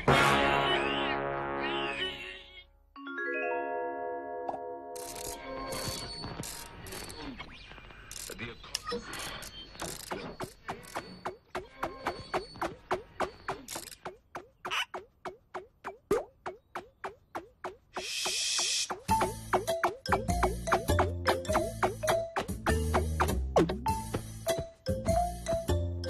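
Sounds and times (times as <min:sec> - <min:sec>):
squeaky ratchet-like clicks: 0:05.0 - 0:15.1.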